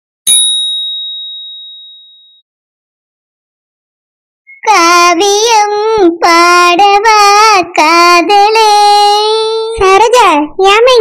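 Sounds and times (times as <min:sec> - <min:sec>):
bright bell ding: 0:00.3 - 0:02.4.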